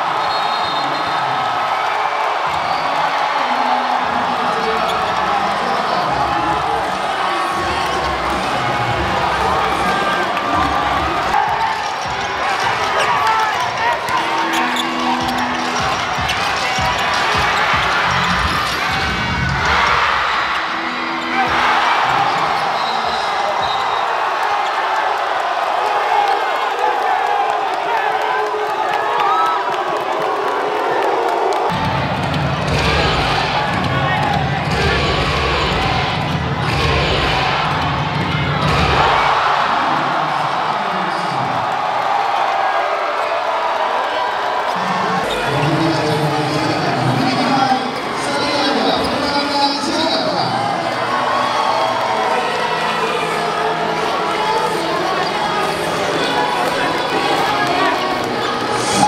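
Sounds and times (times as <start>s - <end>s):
crowd shouting and cheering: 0.0s - 59.0s.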